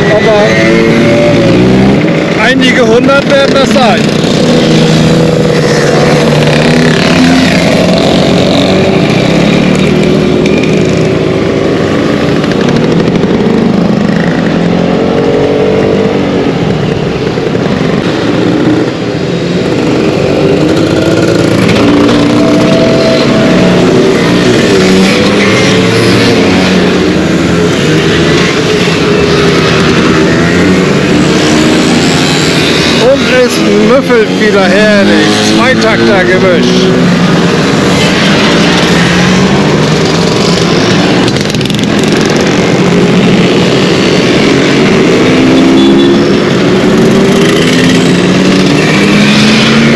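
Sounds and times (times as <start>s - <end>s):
scooter engines: 0.0s - 49.9s.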